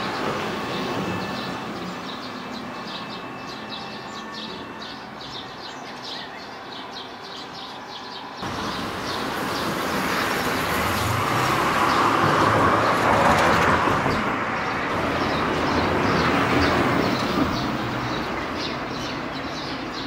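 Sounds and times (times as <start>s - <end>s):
birds chirping: 0.0s - 20.0s
passing vehicle road noise: 8.4s - 20.0s.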